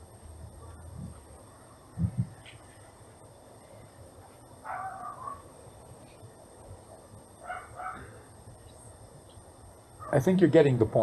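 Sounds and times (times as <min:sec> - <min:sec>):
low background noise: 0:00.0 - 0:11.0
faint animal calls: 0:04.6 - 0:05.6, 0:07.4 - 0:08.8, 0:10.0 - 0:10.3.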